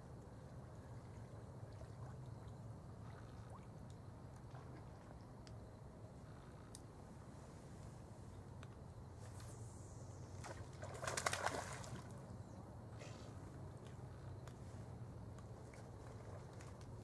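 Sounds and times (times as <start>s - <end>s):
faint ticks: 3.8s - 4.5s, 5.4s - 6.9s
fishing lure splashing in river: 10.4s - 12.2s.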